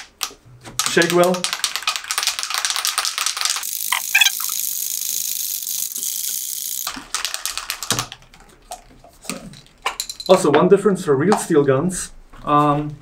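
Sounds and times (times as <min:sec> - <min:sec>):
spray can rattling: 0:00.9 - 0:08.2.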